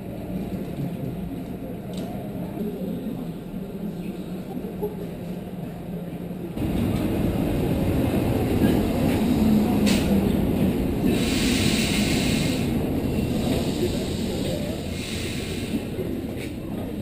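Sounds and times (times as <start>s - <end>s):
electric train rumble: 2.6s - 17.0s
hiss: 11.1s - 12.7s, 13.3s - 16.0s.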